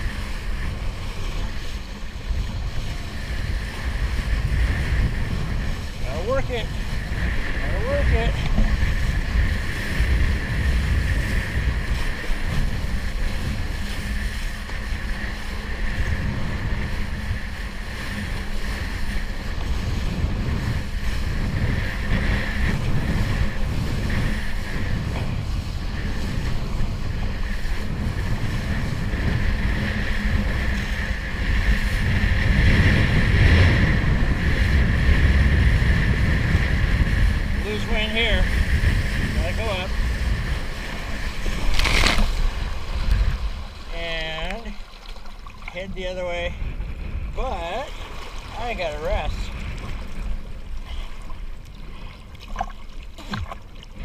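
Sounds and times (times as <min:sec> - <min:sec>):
water rushing under kiteboard: 0:00.0 - 0:54.0
wind buffeting microphone: 0:00.0 - 0:54.0.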